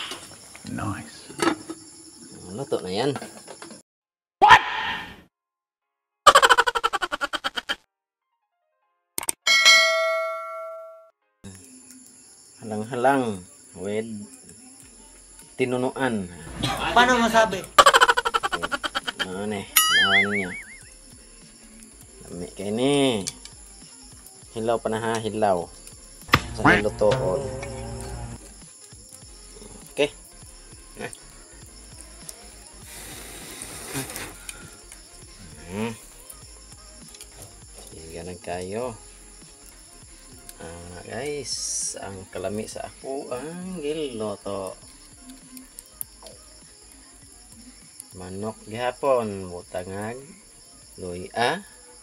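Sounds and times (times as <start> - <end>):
notification bell chime: 9.5 - 11.1
wood fire crackling and popping: 20.9 - 42.7, 44.1 - 48.1.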